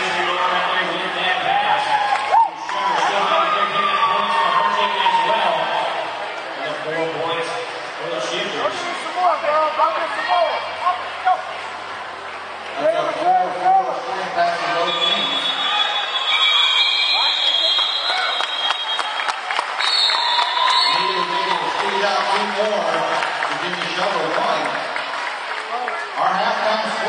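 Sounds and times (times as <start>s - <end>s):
crowd voices in echoing hall: 0.0s - 27.0s
high steady whistle tones: 14.6s - 21.6s
scattered clapping: 17.6s - 27.0s.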